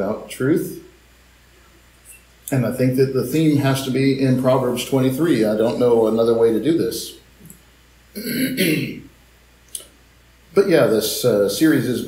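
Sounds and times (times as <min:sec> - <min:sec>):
man clearing throat: 0:08.2 - 0:09.1.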